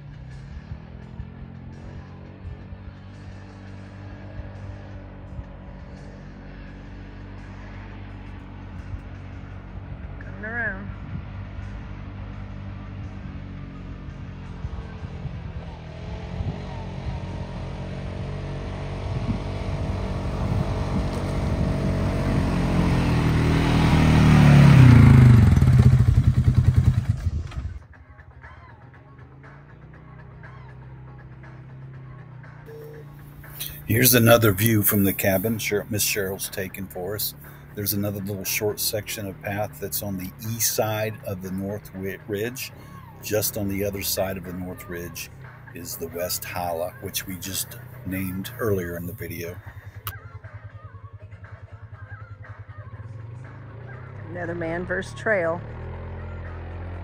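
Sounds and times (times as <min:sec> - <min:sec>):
quad bike engine passing: 0:00.0 - 0:57.0.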